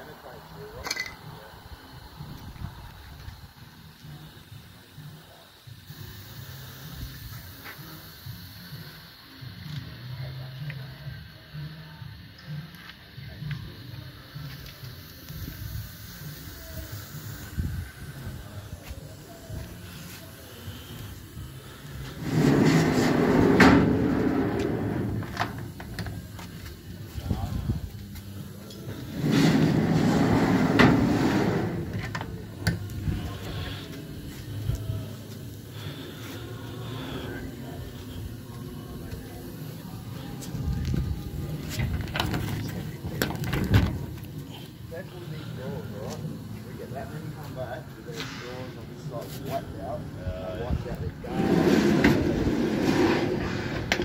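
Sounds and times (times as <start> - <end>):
steel drawer sliding on runners: 22.2 - 25.5, 29.2 - 32.0, 51.4 - 54.0.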